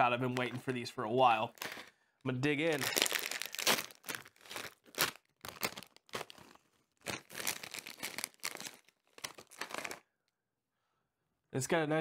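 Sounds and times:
snack bag crinkling: 1.4 - 10.0.

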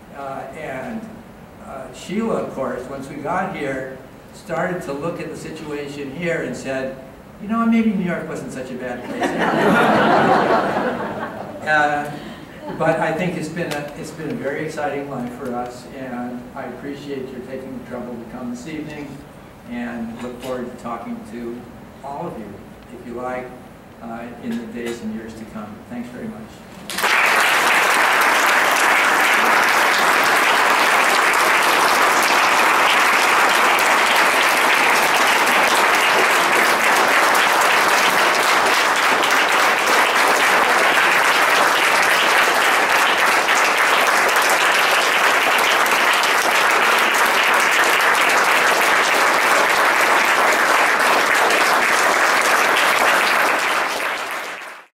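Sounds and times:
audience clapping: 26.8 - 54.9.

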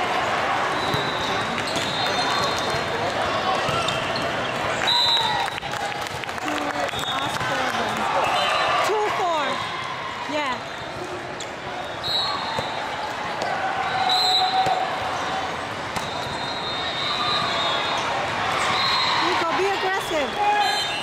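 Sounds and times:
players' voices and calls: 0.0 - 21.0
volleyballs bouncing and struck: 0.8 - 4.8, 5.6 - 8.0, 12.4 - 13.7, 14.4 - 16.5.

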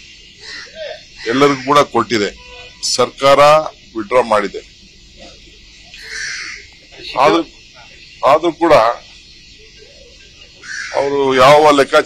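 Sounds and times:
faint bird call: 0.0 - 2.9, 5.2 - 8.3, 9.0 - 11.5
outdoor background noise: 0.0 - 12.0
man speaking: 1.2 - 4.7, 7.0 - 9.1, 10.9 - 12.0.

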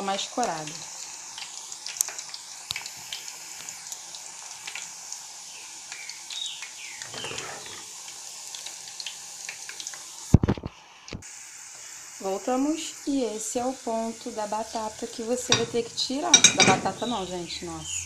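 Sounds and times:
food deep-frying in oil: 0.0 - 18.0.

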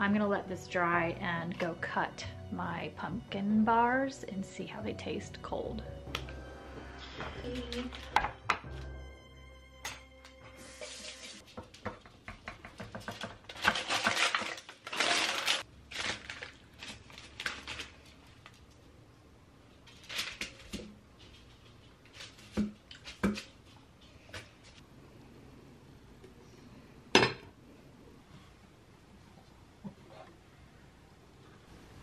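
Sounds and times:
soft music: 0.0 - 11.4
parchment paper rustling: 13.5 - 18.6, 19.8 - 23.2.

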